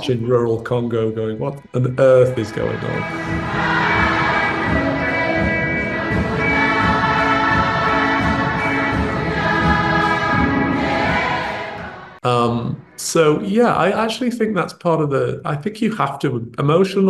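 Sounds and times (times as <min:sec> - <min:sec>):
children's choir singing: 0:01.8 - 0:13.5.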